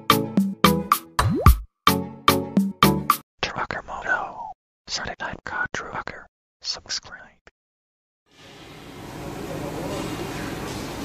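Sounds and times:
intro music: 0.0 - 3.2
whispered voice-over: 3.4 - 7.5.

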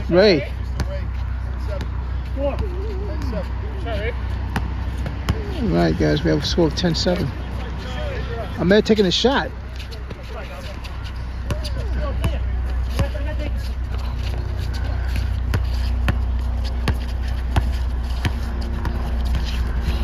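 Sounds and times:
faint voices: 0.0 - 17.8
basketball bouncing on hard court: 4.5 - 5.5, 15.2 - 19.6
steady low rumble: 9.4 - 20.0.

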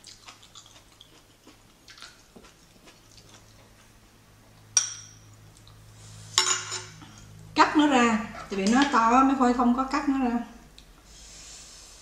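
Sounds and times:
utensils tapping and scraping bowl: 6.4 - 7.2.

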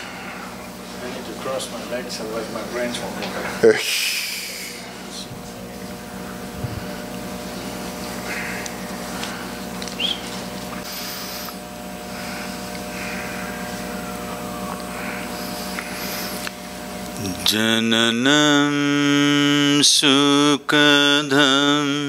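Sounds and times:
hum of held tones: 0.0 - 22.0.

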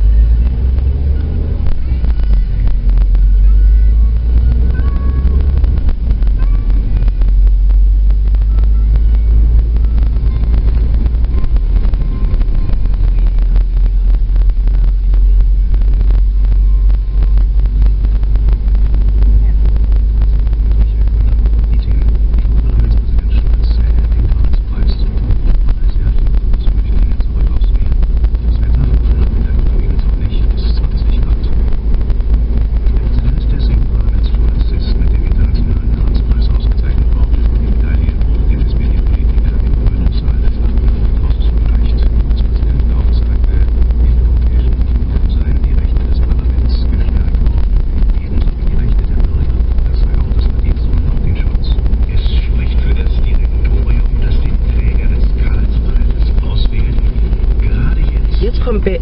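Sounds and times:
car engine: 0.0 - 59.0
wind noise: 0.0 - 59.0.

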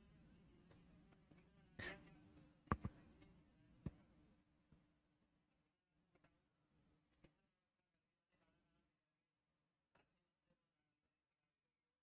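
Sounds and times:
faint taps: 2.7 - 4.0.

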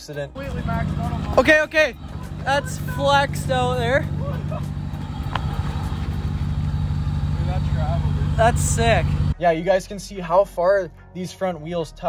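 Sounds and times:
truck engine idling: 0.4 - 9.4.

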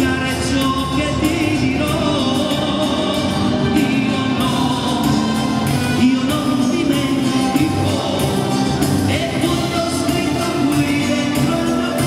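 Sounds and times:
group of singers: 0.0 - 12.0
live band with horns: 0.0 - 12.0.

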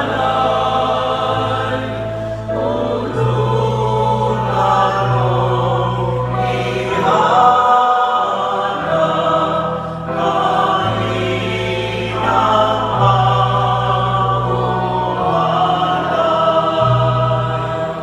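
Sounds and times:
church choir singing a hymn: 0.0 - 18.0
piano accompaniment: 0.0 - 18.0
sustained bass notes: 0.0 - 18.0.

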